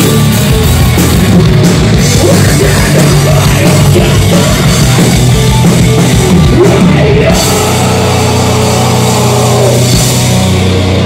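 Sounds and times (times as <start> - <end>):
distorted guitar and bass droning: 0.0 - 11.0.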